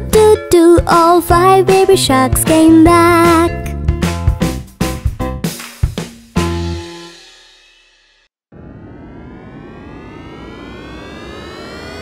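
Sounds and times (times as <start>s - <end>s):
jet engine whine rising: 8.4s - 12.0s.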